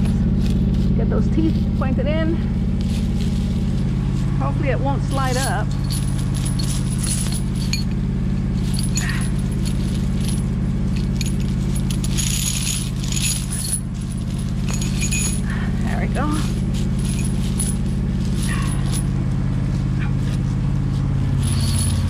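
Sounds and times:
engine idling hum: 0.0 - 22.0
heavy chain jangling: 2.1 - 20.6, 21.2 - 22.0.

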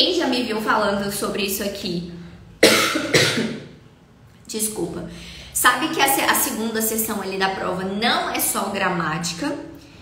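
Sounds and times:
woman coughing: 2.6 - 3.7.

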